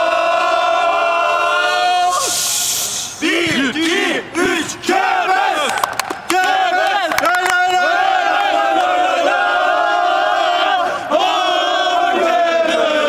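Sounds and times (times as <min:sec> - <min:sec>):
men chanting and shouting: 0:03.2 - 0:13.0.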